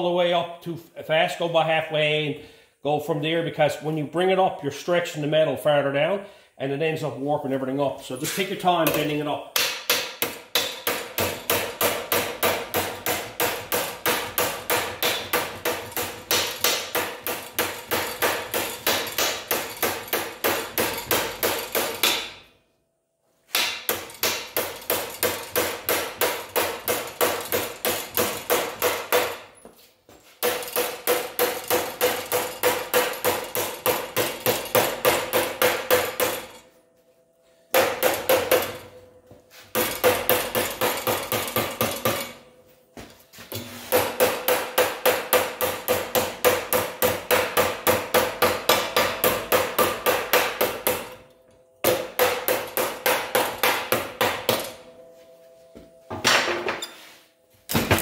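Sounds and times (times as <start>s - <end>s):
hammer beating steel sheet: 8.2s - 22.5s, 23.5s - 29.6s, 30.4s - 36.8s, 37.7s - 42.5s, 43.5s - 55.2s.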